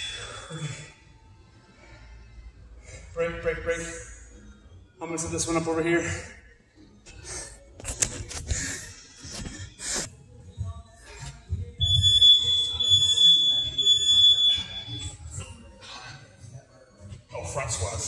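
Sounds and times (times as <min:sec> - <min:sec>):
high-pitched electronic beep: 0:11.8 - 0:15.2.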